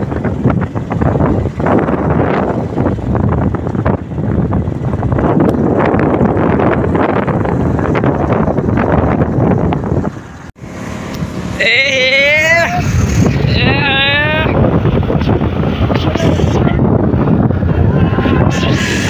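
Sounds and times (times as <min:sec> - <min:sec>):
motorcycle engine running: 0:00.0 - 0:19.0
wind buffeting microphone: 0:00.0 - 0:19.0.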